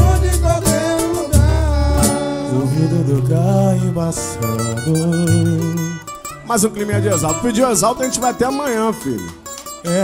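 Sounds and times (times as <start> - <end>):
drums: 0.0 - 2.6
deep bass: 0.0 - 6.0
person singing: 0.0 - 6.1
plucked strings: 0.0 - 10.0.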